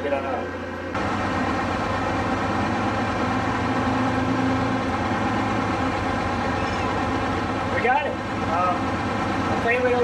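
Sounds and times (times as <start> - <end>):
diesel engine cranking and running: 0.2 - 10.0.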